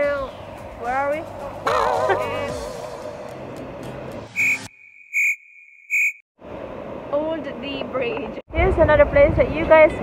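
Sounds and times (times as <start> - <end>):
outdoor background noise: 0.0 - 10.0
short high electronic beeps: 4.4 - 6.2.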